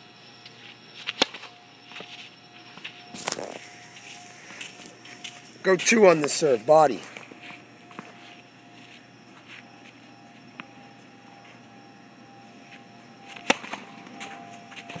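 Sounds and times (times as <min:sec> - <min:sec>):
racket striking tennis ball: 0:13.3 - 0:13.8.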